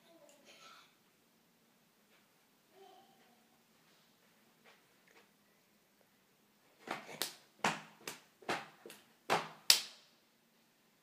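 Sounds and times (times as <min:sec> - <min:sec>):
sharp smacks from jumping jacks: 0:06.8 - 0:10.0.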